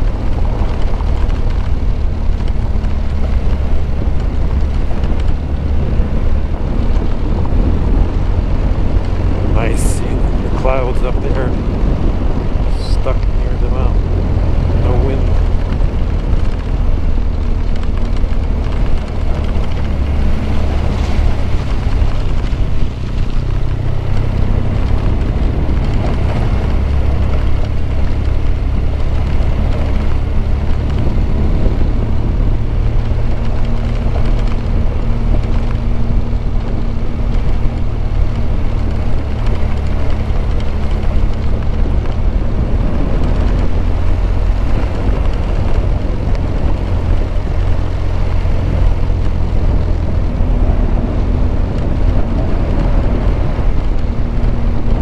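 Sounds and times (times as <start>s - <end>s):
motorcycle engine running: 0.0s - 55.0s
tyres on loose dirt: 0.0s - 55.0s
wind noise on microphone: 0.0s - 55.0s.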